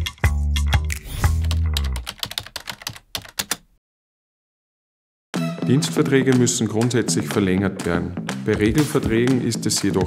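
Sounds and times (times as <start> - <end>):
computer keyboard typing: 1.4 - 3.7.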